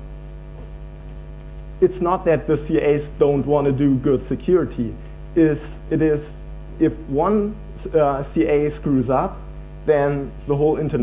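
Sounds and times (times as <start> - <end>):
electrical mains hum: 0.0 - 11.0
man talking: 1.8 - 11.0.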